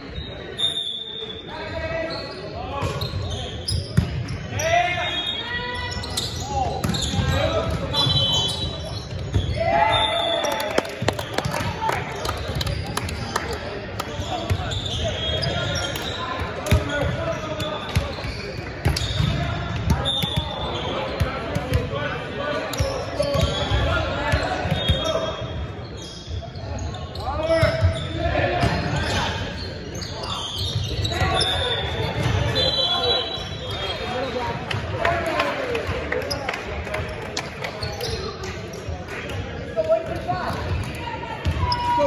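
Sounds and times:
voices calling and chattering: 0.0 - 42.0
sneakers squeaking on court: 2.0 - 4.6, 5.2 - 9.6, 14.1 - 21.8, 22.7 - 34.4.

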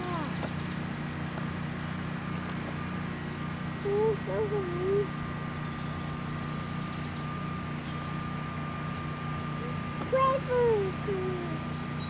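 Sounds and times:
faint high whine: 0.0 - 12.0
vehicle engine humming: 0.0 - 12.0.

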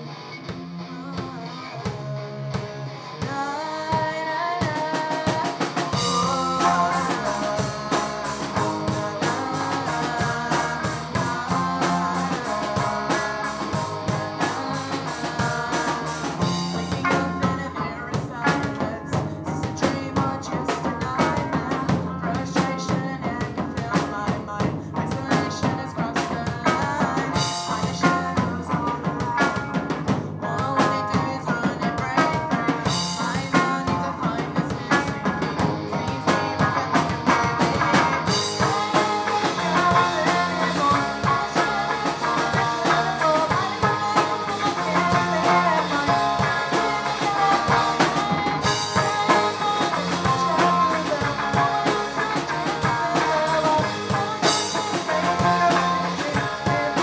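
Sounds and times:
bass guitar: 0.0 - 57.0
electric guitars: 0.0 - 57.0
drum kit: 0.5 - 57.0
person singing lead vocals: 0.6 - 57.0.

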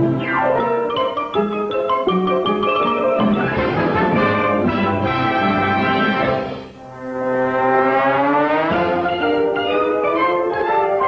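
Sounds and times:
orchestral cartoon music with brass: 2.7 - 11.0.

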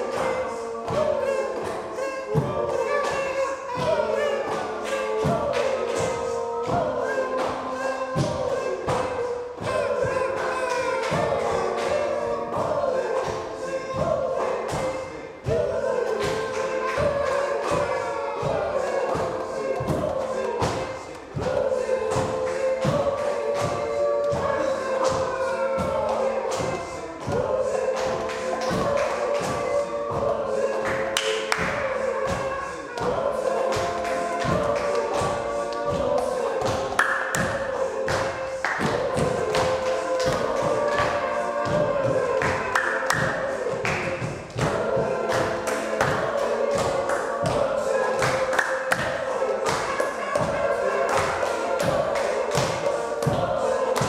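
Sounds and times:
hand claps: 0.0 - 54.0
voices singing together: 0.0 - 54.0.

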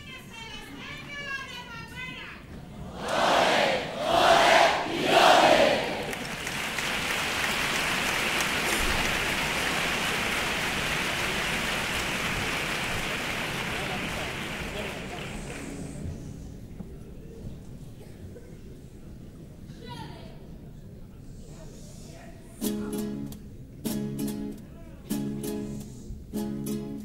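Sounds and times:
crowd shouting: 2.9 - 6.2
audience applause: 3.0 - 15.8.

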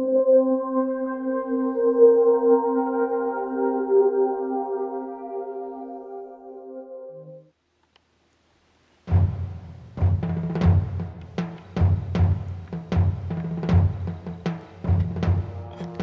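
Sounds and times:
soft ambient music: 0.0 - 7.5, 15.2 - 16.0
heavy drum hits over low bass: 9.1 - 15.7.

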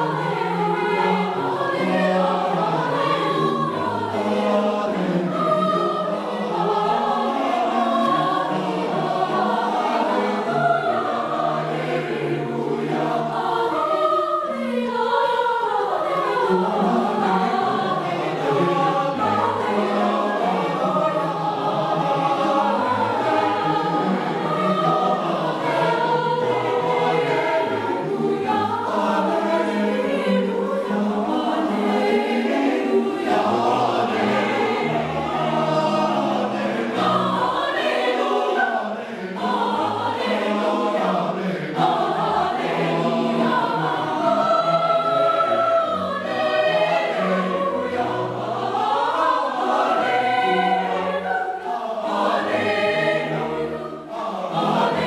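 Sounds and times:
cello: 0.0 - 55.0
youth choir singing: 0.0 - 55.0.

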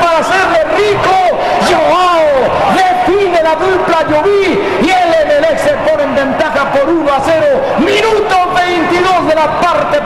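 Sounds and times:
man commentating excitedly: 0.0 - 10.0
stadium crowd noise: 0.0 - 10.0.

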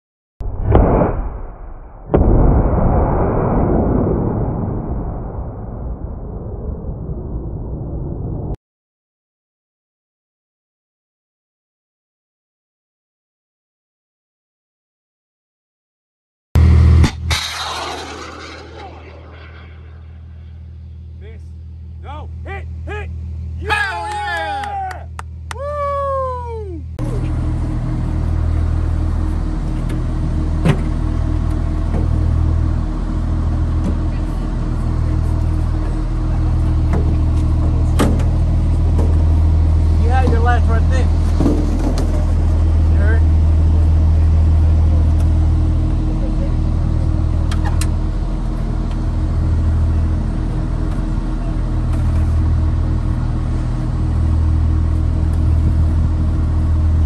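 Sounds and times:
diesel engine idling: 20.8 - 57.0.

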